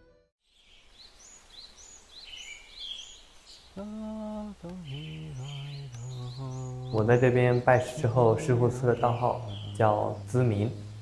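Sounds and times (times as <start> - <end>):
birds chirping: 0.5 - 11.0.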